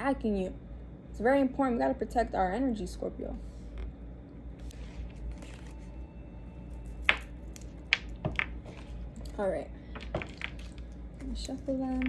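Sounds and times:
low steady hum: 0:00.0 - 0:12.0
cards being handled: 0:04.6 - 0:05.9.

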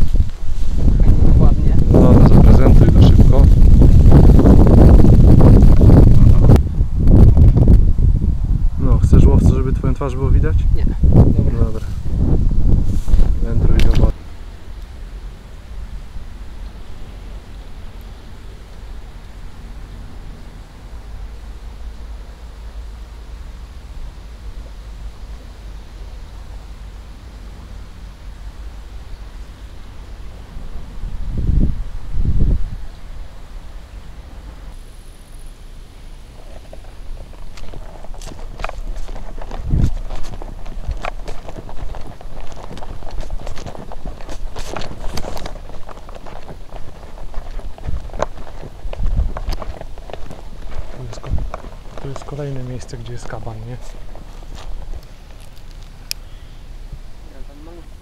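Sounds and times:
footsteps on sandy path: 0:00.0 - 0:07.9, 0:11.0 - 0:14.2, 0:36.3 - 0:56.2
steady low rumble: 0:00.0 - 0:58.0.

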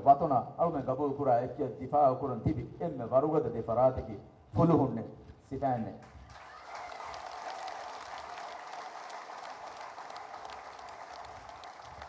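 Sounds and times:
audience applauding: 0:06.2 - 0:12.0.

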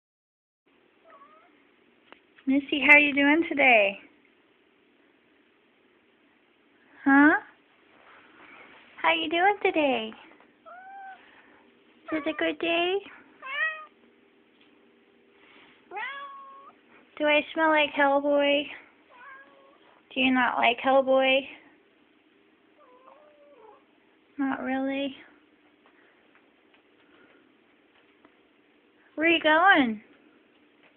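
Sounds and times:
cat meowing faintly: 0:01.1 - 0:01.6, 0:10.7 - 0:11.3, 0:13.4 - 0:14.0, 0:15.9 - 0:16.8, 0:19.1 - 0:19.9, 0:22.8 - 0:23.9.

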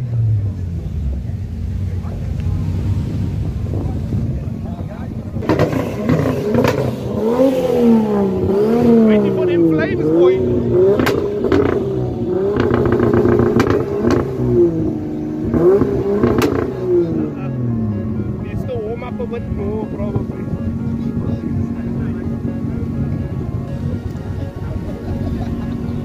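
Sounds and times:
car engine revving: 0:00.0 - 0:26.0
exhaust cracks: 0:00.1 - 0:26.0.

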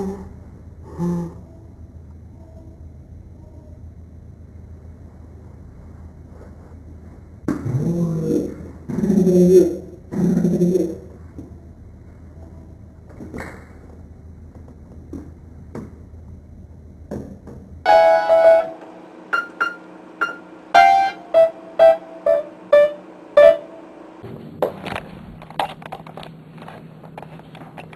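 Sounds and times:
piano note ringing: 0:17.9 - 0:24.5.

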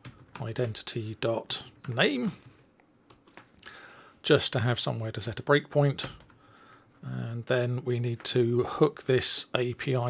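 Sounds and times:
person speaking: 0:00.3 - 0:02.6, 0:04.2 - 0:06.3, 0:07.0 - 0:10.0
faint keyboard keystrokes: 0:01.7 - 0:03.6.

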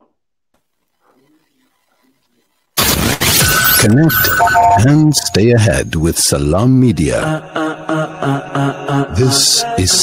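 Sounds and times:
radio jingle melody: 0:02.8 - 0:07.0.

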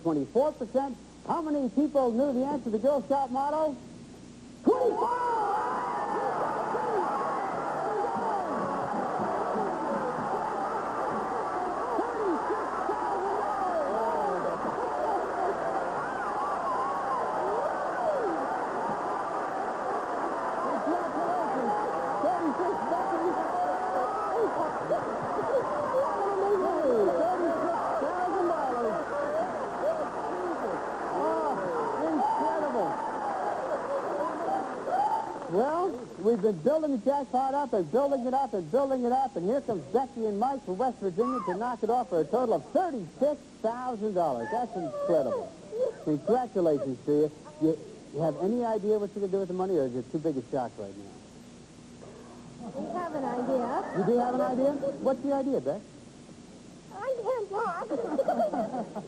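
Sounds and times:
audience cheering and screaming: 0:04.8 - 0:36.1.

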